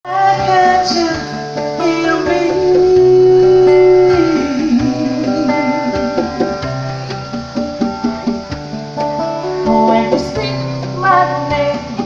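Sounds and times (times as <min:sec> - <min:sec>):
woman singing: 0:00.0 - 0:07.2, 0:09.5 - 0:12.0
plucked strings: 0:00.0 - 0:12.0.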